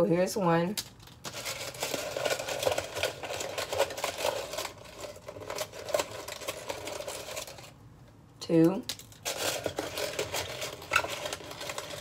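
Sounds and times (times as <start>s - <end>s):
paper slips rustling in cup: 1.0s - 7.8s, 9.2s - 12.0s.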